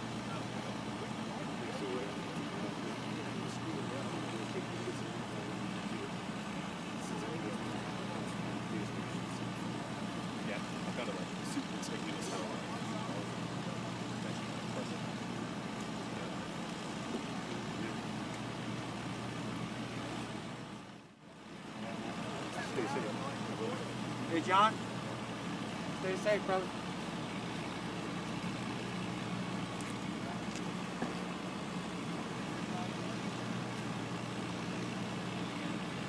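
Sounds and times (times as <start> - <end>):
distant crowd voices: 0.0 - 36.0
idling vehicle engines humming: 0.0 - 36.0.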